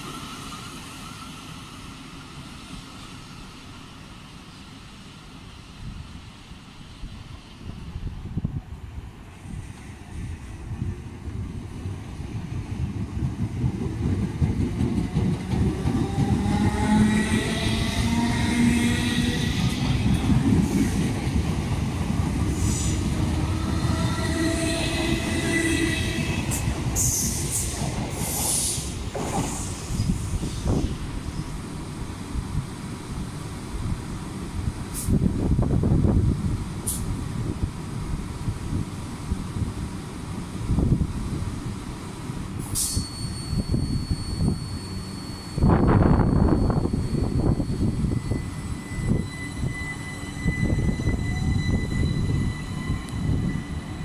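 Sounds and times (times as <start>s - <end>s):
rail squeals: 0.0s - 5.3s, 15.0s - 21.5s, 22.2s - 31.8s, 42.6s - 54.0s
train clanks: 9.6s - 31.0s, 42.5s - 48.5s
wheels rumbling on rails: 9.6s - 54.0s
train traction motors whining: 15.2s - 21.1s.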